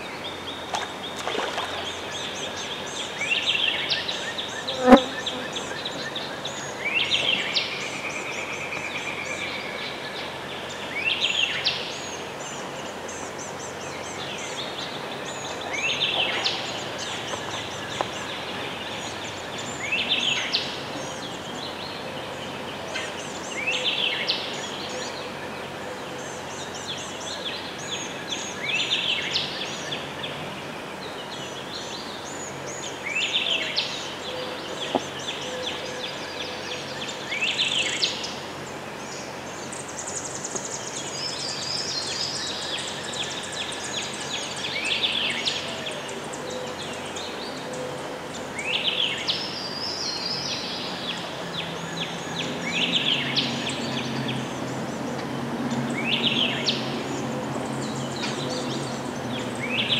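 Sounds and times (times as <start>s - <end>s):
songbird singing: 0.0s - 59.9s
steady outdoor hiss: 0.0s - 59.9s.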